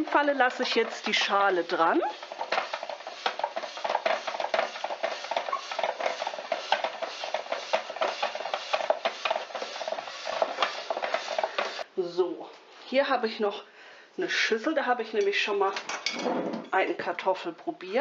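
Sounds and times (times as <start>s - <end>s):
spiral slicer crunching potato: 0.0s - 11.8s.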